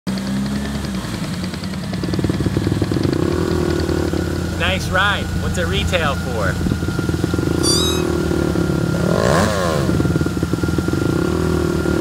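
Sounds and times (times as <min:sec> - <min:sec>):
vehicle engine running and revving: 0:00.1 - 0:07.6, 0:08.2 - 0:12.0.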